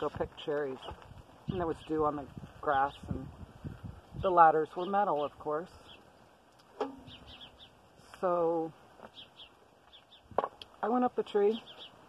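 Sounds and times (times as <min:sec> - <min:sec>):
bird chirps: 0:06.7 - 0:07.8, 0:09.1 - 0:10.3, 0:11.5 - 0:12.0.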